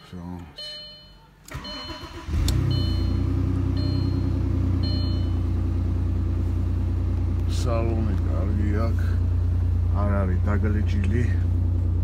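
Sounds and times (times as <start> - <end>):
two-tone dashboard chime: 0.6 - 5.5
car engine starting and idling: 1.4 - 12.0.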